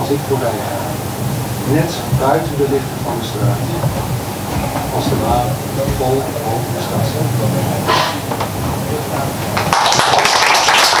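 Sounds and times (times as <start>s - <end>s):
audience applause: 9.0s - 11.0s.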